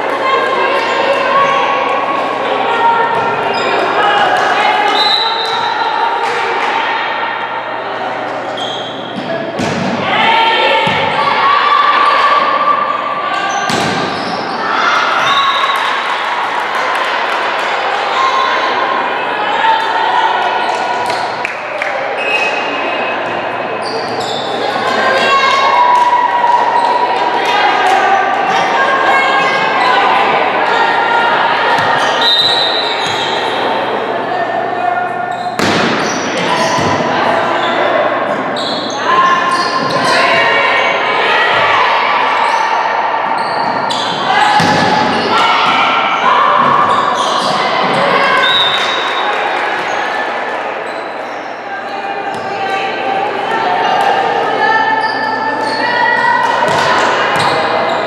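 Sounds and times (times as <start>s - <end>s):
players calling out: 0.0s - 58.0s
volleyball smacks: 35.6s - 36.0s.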